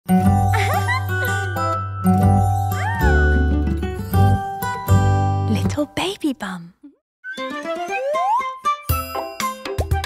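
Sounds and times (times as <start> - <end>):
bright jingle music: 0.1 - 5.6, 8.9 - 10.0.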